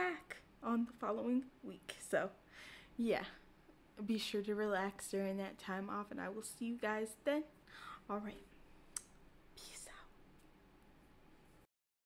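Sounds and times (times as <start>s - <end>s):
low room hum: 0.0s - 11.7s
woman whispering: 9.6s - 10.2s.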